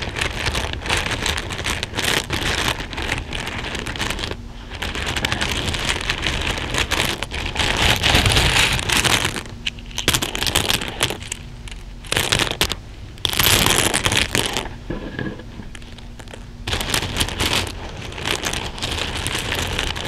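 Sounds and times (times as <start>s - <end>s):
plastic beads and buttons clattering: 0.0s - 14.7s, 15.7s - 20.0s.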